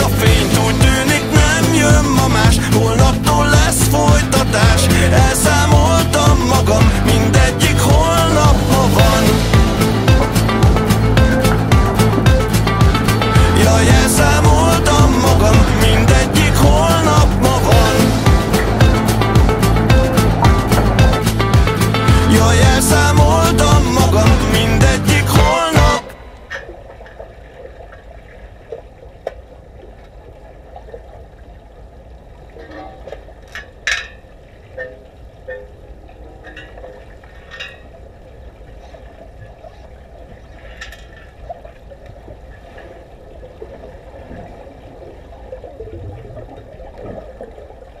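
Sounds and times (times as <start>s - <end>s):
muffled underwater rumble: 26.2s - 48.0s.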